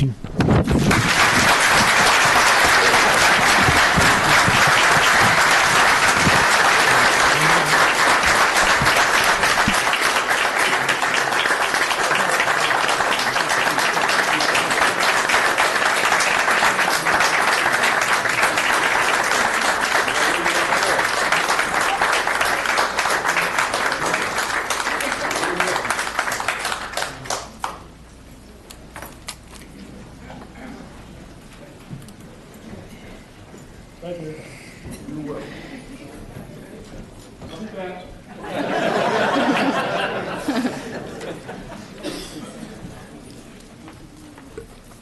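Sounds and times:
audience applauding: 0.7 - 27.9.

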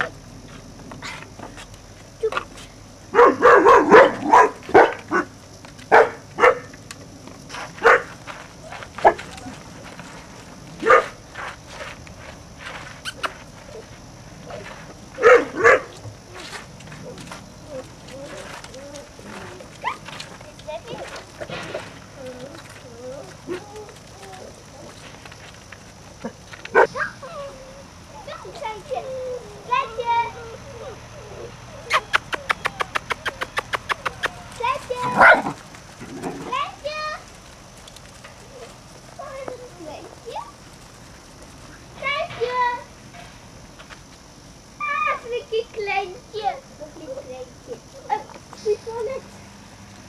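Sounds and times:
puppy yapping: 3.2 - 5.3, 26.7 - 28.6, 31.2 - 35.6.

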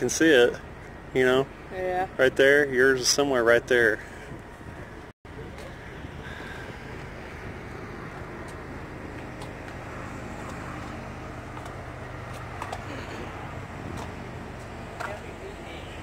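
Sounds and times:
highway traffic: 0.0 - 16.0
truck engines idling: 0.0 - 16.0.

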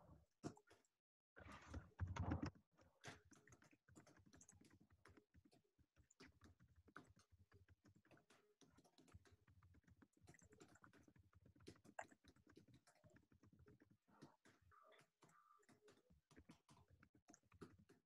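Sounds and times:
faint typing on computer keyboard: 1.9 - 18.0.

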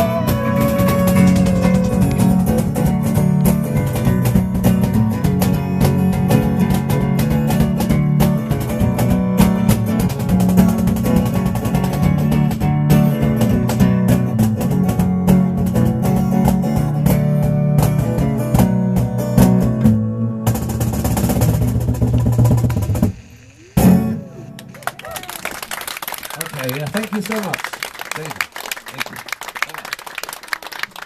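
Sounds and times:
audience applauding: 0.0 - 2.7, 24.4 - 31.0
acoustic guitar strummed: 0.0 - 24.8.

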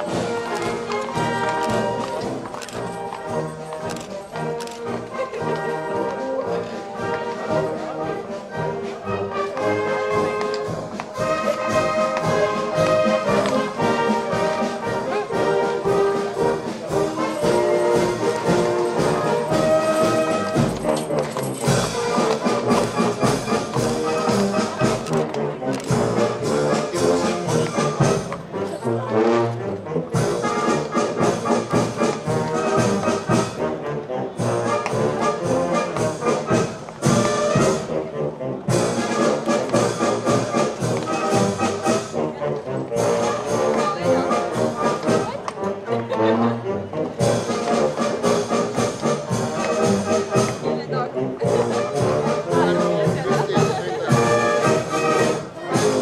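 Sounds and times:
brass-led orchestra playing: 0.0 - 56.0.

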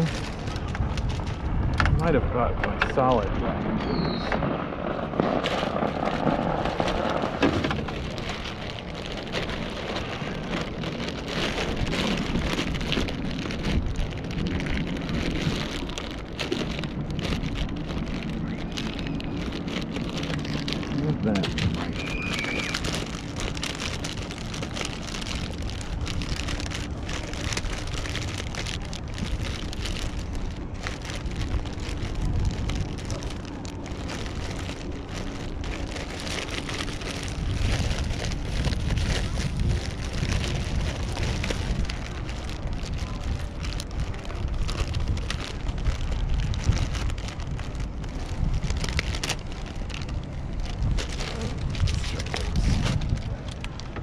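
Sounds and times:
plastic bag crinkling: 0.0 - 2.2, 5.1 - 54.0
low steady rumble: 0.0 - 54.0.

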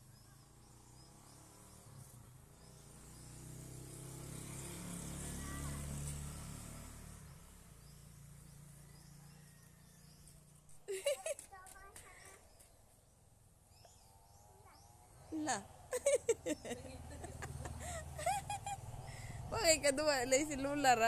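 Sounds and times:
vehicle engine hum passing: 0.0 - 12.6, 13.6 - 21.0.

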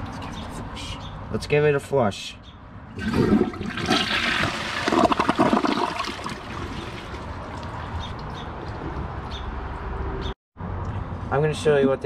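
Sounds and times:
toilet flushing: 3.0 - 7.4.

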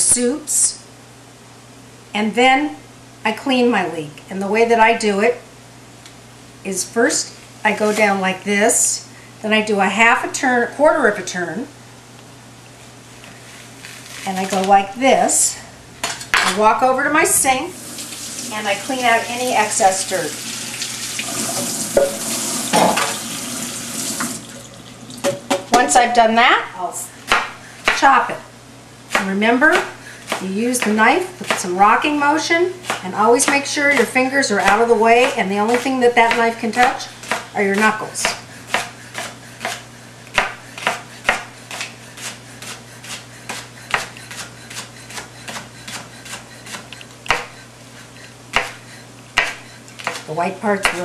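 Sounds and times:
tap water splashing into a sink: 20.6 - 25.7.

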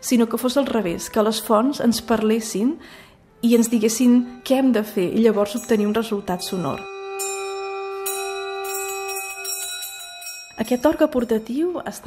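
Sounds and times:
ringing bell tones music: 3.4 - 12.0.

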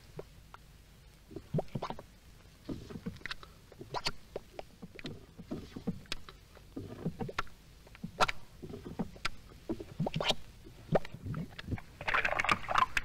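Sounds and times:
mud bubbling and plopping: 1.3 - 13.0.

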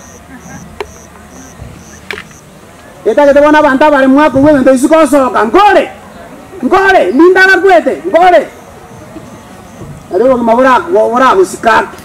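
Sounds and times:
insect chirping: 0.0 - 2.6, 8.4 - 10.3.

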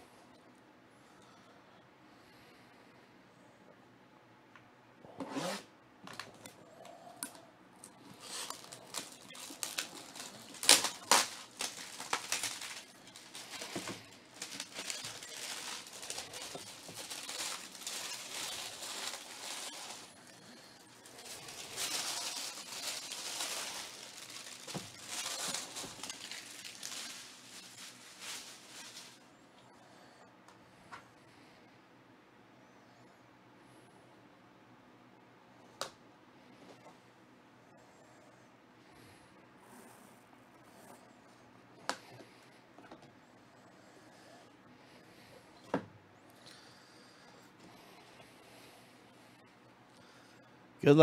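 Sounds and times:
plastic wrap crinkling and tearing: 7.8 - 29.3.

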